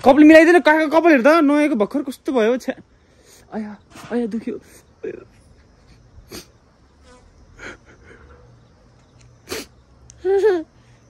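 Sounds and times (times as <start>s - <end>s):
man sobbing breaths: 7.6s - 8.3s.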